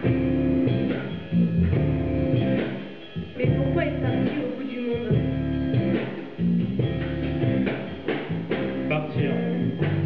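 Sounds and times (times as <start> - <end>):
live band with electric guitar: 0.0 - 4.5, 5.1 - 10.0.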